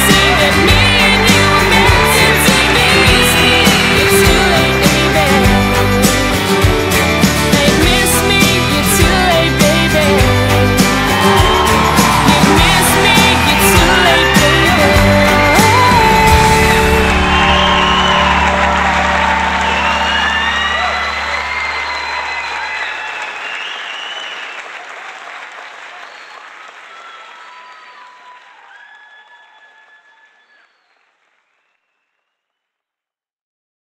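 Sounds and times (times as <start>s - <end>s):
pop-rock song: 0.0s - 22.0s
crowd applauding: 0.0s - 32.2s.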